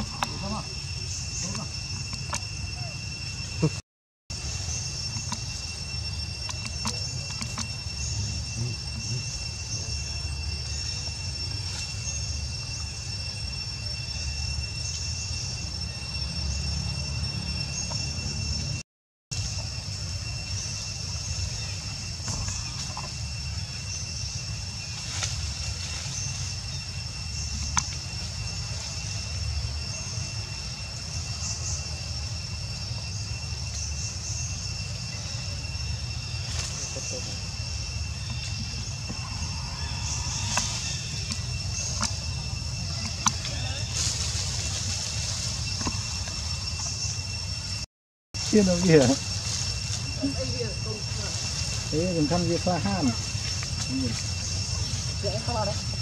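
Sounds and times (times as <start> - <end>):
high-pitched two-tone drone: 0.0 - 18.8.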